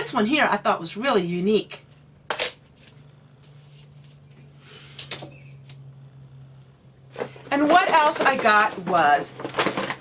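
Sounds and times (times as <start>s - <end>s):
steady low hum: 0.0s - 9.6s
plastic kitchenware clacking: 7.5s - 10.0s.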